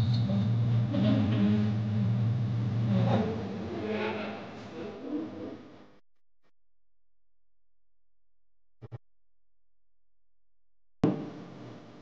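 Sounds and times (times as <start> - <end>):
steady low hum: 0.0 - 6.0.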